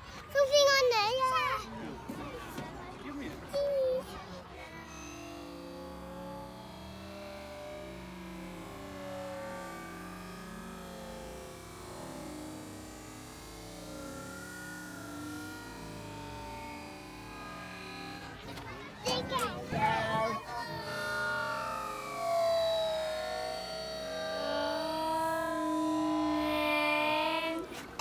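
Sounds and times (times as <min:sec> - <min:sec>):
distant children chattering: 0:00.0 - 0:28.0.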